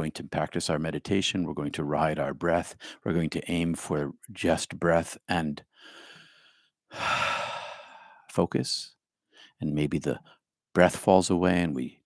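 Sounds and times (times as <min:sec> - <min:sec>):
man breathing close to microphone: 0:05.7 - 0:08.3, 0:09.3 - 0:09.6.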